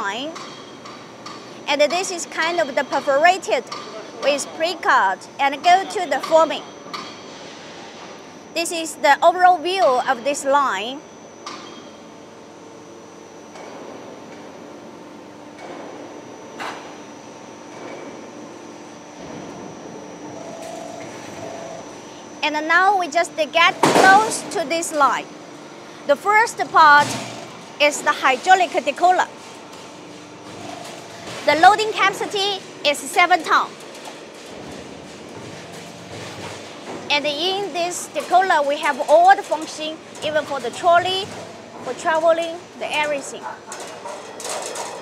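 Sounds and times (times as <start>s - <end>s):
machinery hum: 0.0s - 45.0s.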